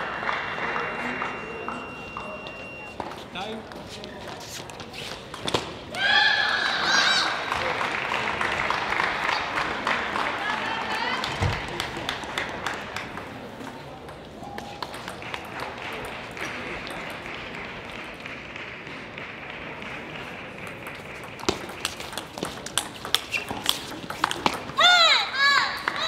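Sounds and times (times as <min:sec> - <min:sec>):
murmur in a hall: 0:00.0 - 0:26.0
table tennis ball clicking: 0:20.6 - 0:24.7.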